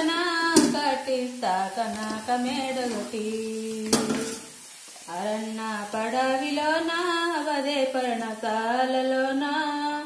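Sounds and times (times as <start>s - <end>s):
oil sizzling: 0.0s - 10.0s
metal spoon clinking on pan: 3.8s - 4.5s.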